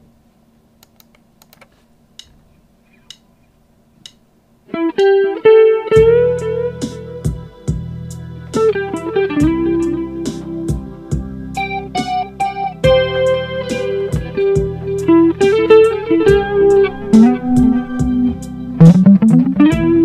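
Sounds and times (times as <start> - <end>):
faint clicks: 0.8 - 2.3
electric guitar lead: 4.7 - 20.0
steady beat: 6.0 - 7.9, 9.4 - 20.0
low backing part: 6.0 - 20.0.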